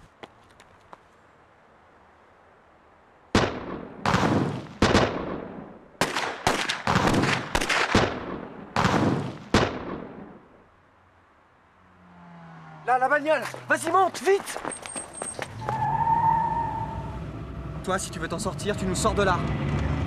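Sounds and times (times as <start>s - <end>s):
echoing gunshots: 3.3s - 10.5s.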